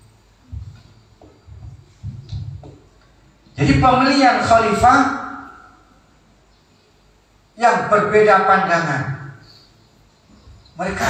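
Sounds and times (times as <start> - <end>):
man speaking into microphone: 3.6 - 5.6, 7.6 - 9.4, 10.8 - 11.0.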